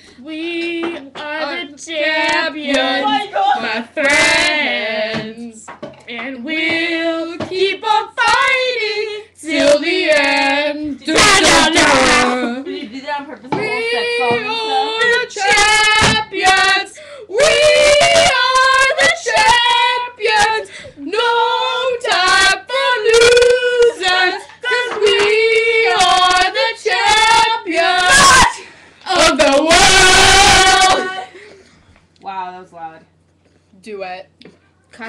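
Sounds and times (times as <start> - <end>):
girls singing loudly: 0.4 - 5.6, 6.2 - 12.6, 13.5 - 31.4.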